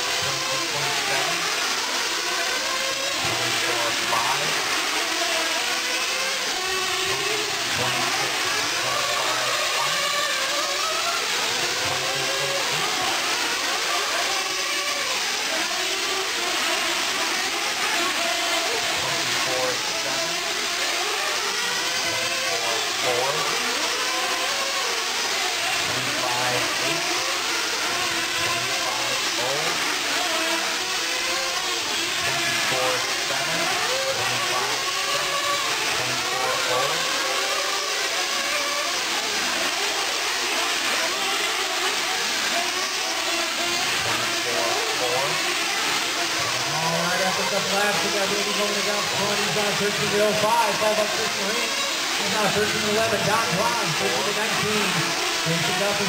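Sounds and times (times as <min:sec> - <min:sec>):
model truck engines buzzing: 0:00.0 - 0:56.0.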